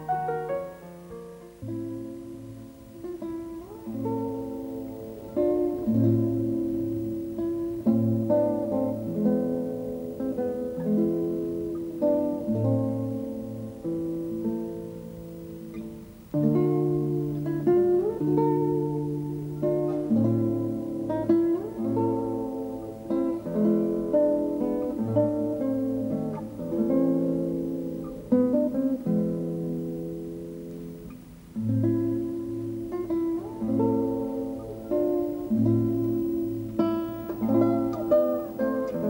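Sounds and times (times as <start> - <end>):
acoustic guitar music: 0.0 - 39.0.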